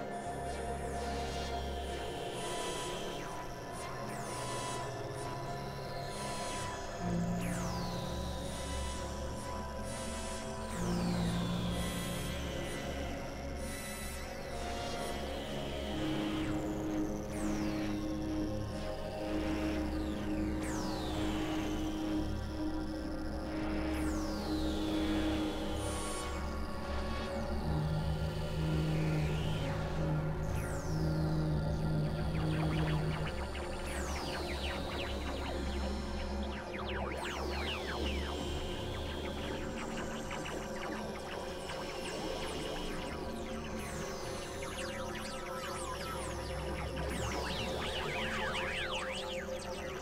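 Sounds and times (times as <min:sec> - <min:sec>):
low synthesizer drone: 0:25.4 - 0:50.0.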